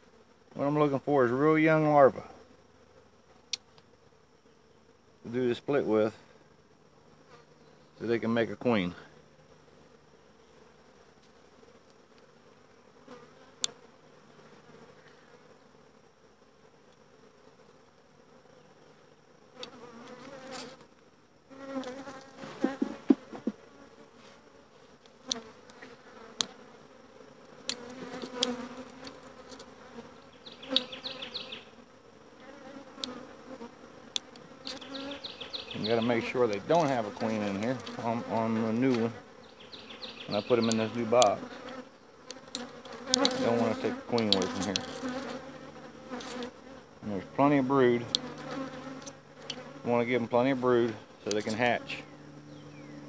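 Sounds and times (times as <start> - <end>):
bees buzzing: 0.0 - 53.0
wooden hive frames knocking: 22.3 - 23.6.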